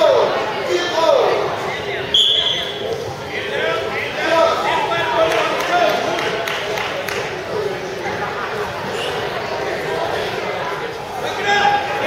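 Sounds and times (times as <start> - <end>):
voices chattering in echoing gym: 0.0 - 12.0
referee's whistle blast: 2.1 - 2.8.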